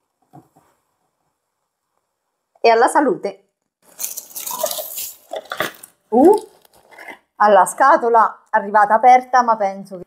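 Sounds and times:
plastic bag rustling and crinkling: 3.8 - 7.0.

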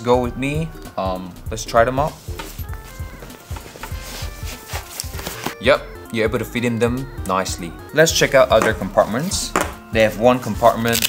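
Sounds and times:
soft background music: 0.0 - 11.0
nylon bag fabric rustling: 2.1 - 5.6.

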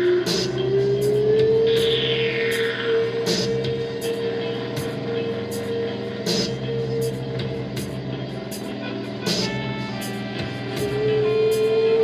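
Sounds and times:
droning electric guitar and bass: 0.0 - 12.0.

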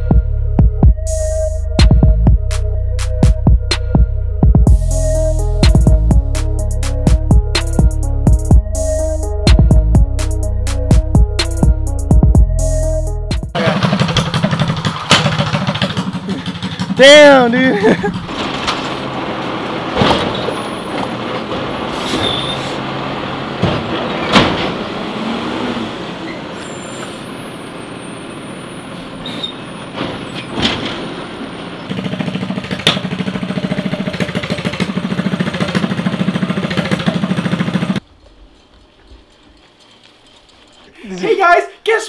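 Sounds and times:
diesel truck engine running: 0.0 - 40.9
air brake hisses: 21.9 - 22.9.

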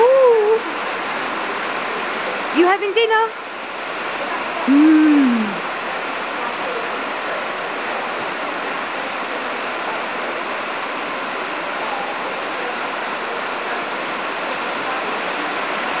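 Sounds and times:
heavy rain on concrete: 0.0 - 16.0.

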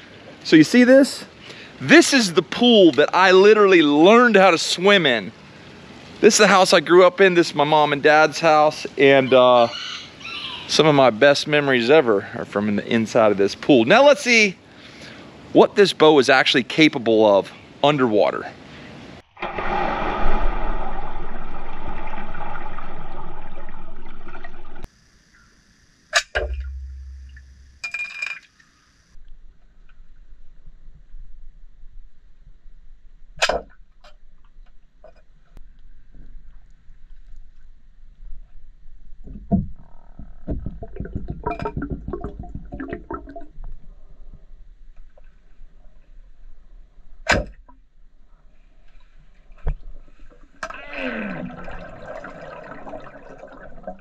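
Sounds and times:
underwater rush of water and bubbles: 19.2 - 24.9, 26.4 - 27.8, 40.4 - 43.9, 50.4 - 54.0
underwater noise: 19.2 - 27.8, 39.3 - 44.7, 50.1 - 54.0
sharp underwater clicks and knocks: 26.2 - 27.9, 39.2 - 43.8.

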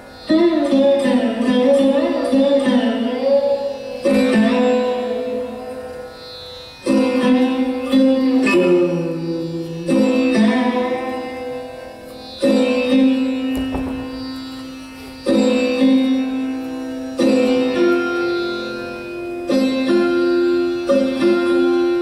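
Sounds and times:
sarod plucked notes: 0.0 - 22.0.

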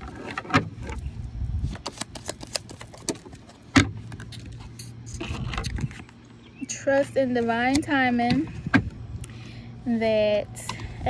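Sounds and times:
cards being shuffled: 1.7 - 3.4.

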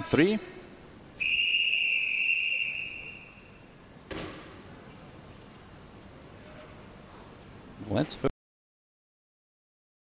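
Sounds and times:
referee's whistle blast: 1.2 - 3.5.

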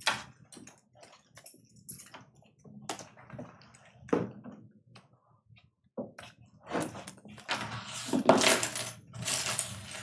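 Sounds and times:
small objects clattering: 7.8 - 10.0.

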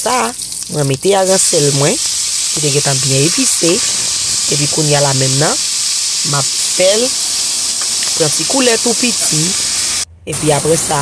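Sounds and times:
fish sizzling in a saucepan: 0.0 - 10.1.

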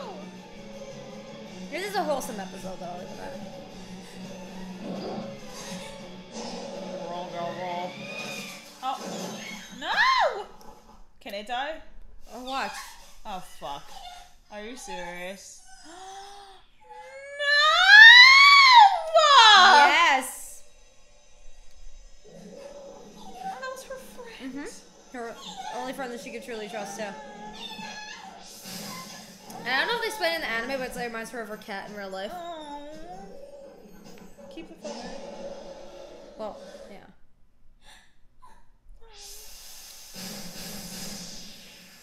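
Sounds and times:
high-pitched wailing cry: 14.9 - 20.1
quiet breath intake: 39.2 - 42.0.

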